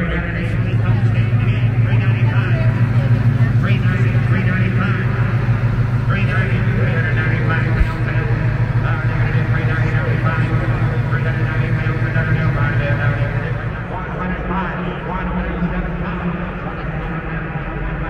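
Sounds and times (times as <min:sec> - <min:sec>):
amplified auctioneer's voice: 0:00.0 - 0:18.0
crowd chatter: 0:00.0 - 0:18.0
low hum: 0:00.0 - 0:18.0.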